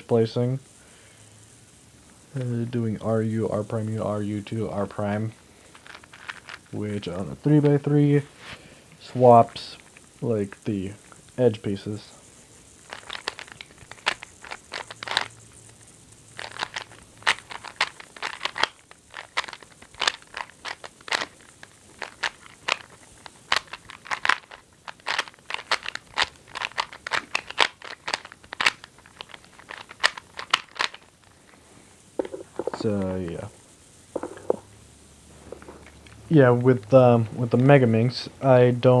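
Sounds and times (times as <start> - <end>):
puzzle cube clicking as twisted: 12.9 - 15.3, 16.4 - 21.4, 22.0 - 31.0.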